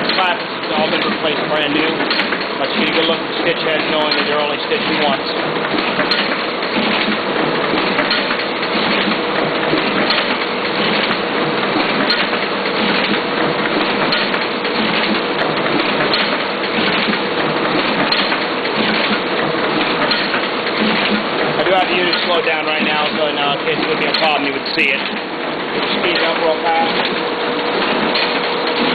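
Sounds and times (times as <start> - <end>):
booklet maker clattering: 0.0 - 28.9.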